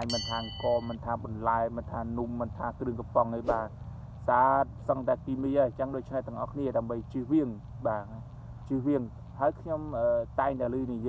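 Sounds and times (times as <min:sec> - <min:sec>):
bell-like ding: 0:00.0 - 0:01.0
man talking: 0:00.0 - 0:11.0.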